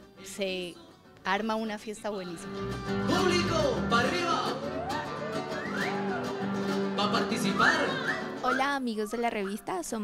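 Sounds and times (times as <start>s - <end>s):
live band with guitars: 0.0s - 9.4s.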